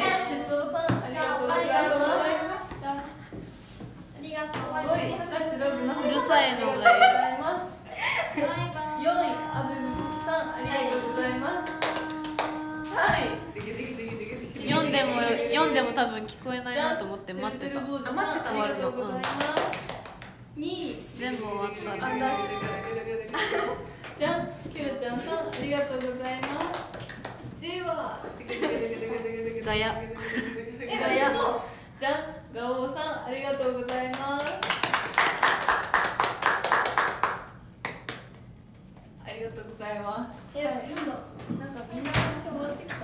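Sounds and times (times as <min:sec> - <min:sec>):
hand claps: 0:10.6 - 0:13.2, 0:25.5 - 0:27.5, 0:33.6 - 0:39.1.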